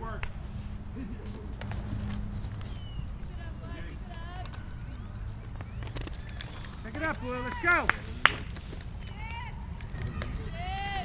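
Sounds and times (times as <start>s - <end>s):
distant shouted calls: 0.0s - 11.0s
low background rumble: 0.0s - 11.0s.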